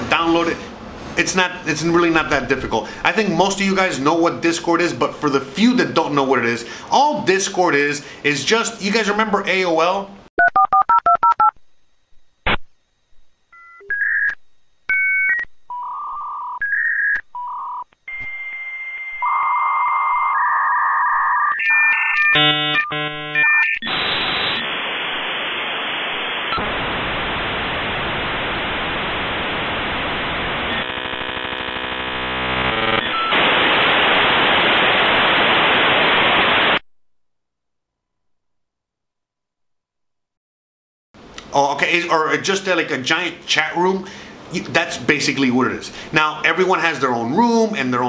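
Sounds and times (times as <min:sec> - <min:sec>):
modem noise hiss: 0:00.0 - 0:10.3, 0:22.3 - 0:36.8, 0:41.2 - 0:48.0
steady modem tone: 0:13.5 - 0:36.8.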